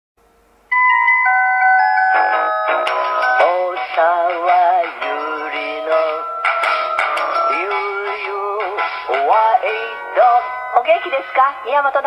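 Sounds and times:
bell-like chime notes: 0.7s - 3.7s
backing music: 0.7s - 12.0s
woman singing with vibrato: 3.4s - 6.2s, 7.5s - 12.0s.

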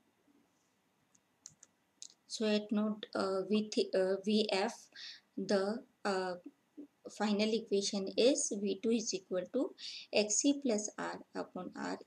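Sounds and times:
faint clicks: 1.1s - 2.2s.

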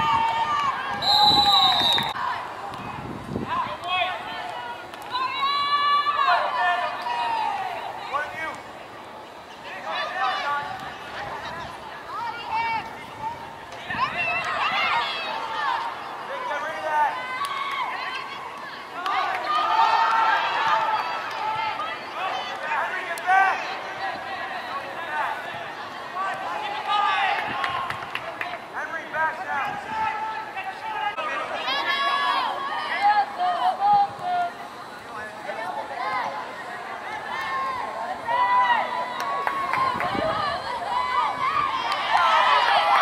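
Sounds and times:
people shouting across a field: 0.0s - 8.6s, 9.6s - 28.1s, 29.4s - 43.0s.

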